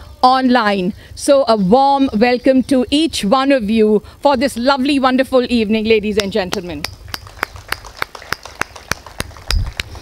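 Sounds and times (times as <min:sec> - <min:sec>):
people clapping slow beat: 0:06.5 - 0:10.0.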